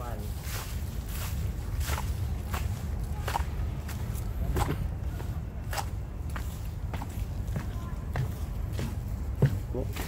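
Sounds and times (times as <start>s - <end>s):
footsteps crunching on dry leaves: 0.0s - 10.0s.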